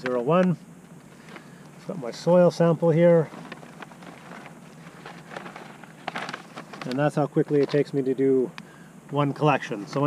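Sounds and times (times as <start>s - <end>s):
paper and leaves rustling: 3.0s - 8.0s.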